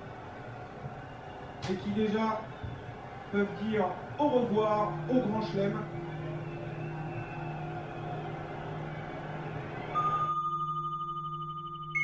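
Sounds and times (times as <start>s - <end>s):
stadium crowd noise: 0.0s - 10.3s
pulsing bell-like tone: 10.0s - 12.0s.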